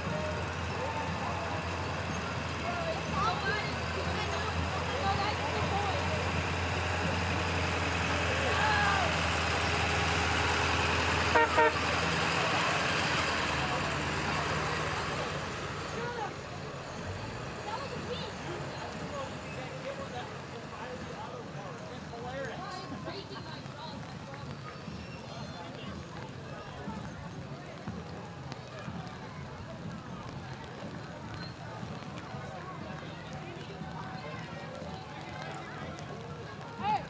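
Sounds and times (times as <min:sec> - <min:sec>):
truck engine hum: 0:00.0 - 0:22.1
crowd chatter: 0:00.0 - 0:37.0
truck horn toots: 0:11.2 - 0:12.2.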